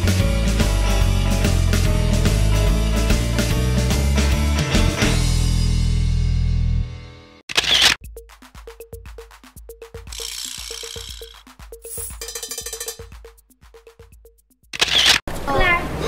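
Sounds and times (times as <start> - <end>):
sparse electronic music: 9.9 - 14.5.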